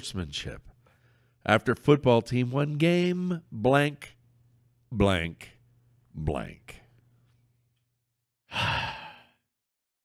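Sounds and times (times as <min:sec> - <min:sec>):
man sighing: 0:08.5 - 0:09.5.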